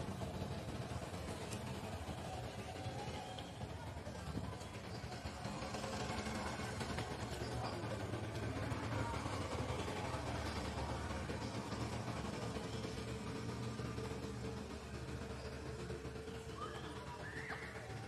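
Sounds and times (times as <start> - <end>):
low outdoor rumble with hiss: 0.0 - 18.0.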